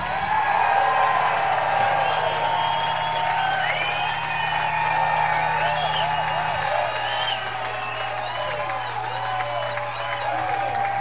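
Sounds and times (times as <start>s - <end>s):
audience cheering and whooping: 0.0s - 11.0s
shrill gliding whistles: 1.7s - 10.6s.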